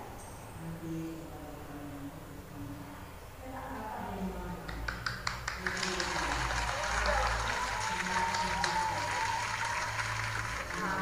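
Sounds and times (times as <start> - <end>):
people clapping: 4.7 - 11.0.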